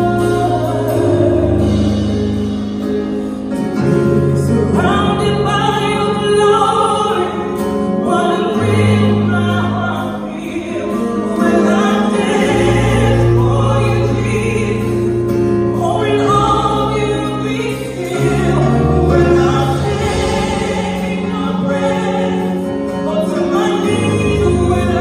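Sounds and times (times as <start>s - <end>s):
woman singing: 0.0s - 2.2s, 4.2s - 25.0s
band playing gospel music: 0.0s - 25.0s.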